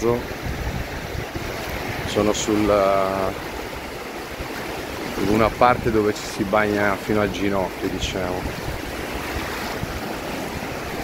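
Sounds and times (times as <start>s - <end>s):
small waves breaking in surf: 0.0s - 11.0s.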